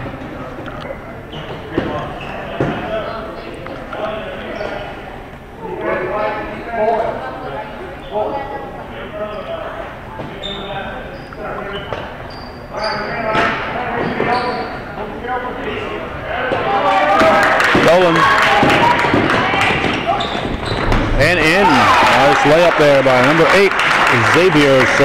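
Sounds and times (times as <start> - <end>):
echoing crowd chatter: 0.0 - 25.0
crowd shouting: 16.3 - 23.1.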